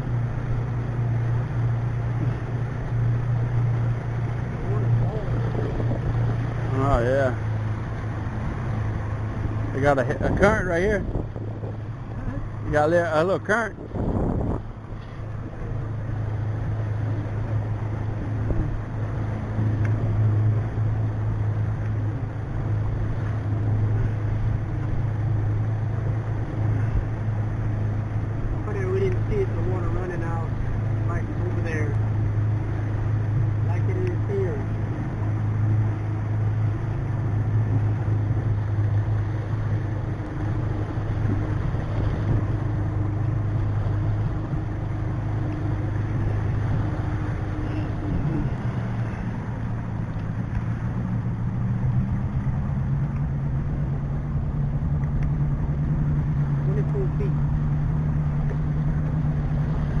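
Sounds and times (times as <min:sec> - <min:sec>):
outboard engine droning: 0:00.0 - 1:00.0
water noise: 0:00.0 - 1:00.0
wind noise: 0:09.3 - 0:12.7, 0:13.6 - 0:15.6.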